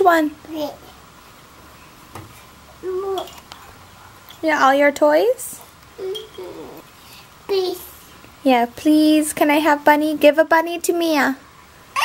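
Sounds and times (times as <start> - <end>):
toddler vocalizing: 2.8 - 3.3, 6.0 - 6.9.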